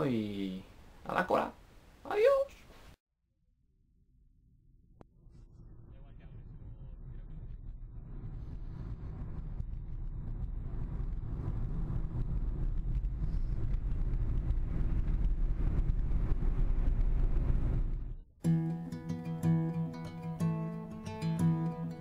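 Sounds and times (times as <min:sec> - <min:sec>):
acoustic guitar music: 0:18.4 - 0:22.0.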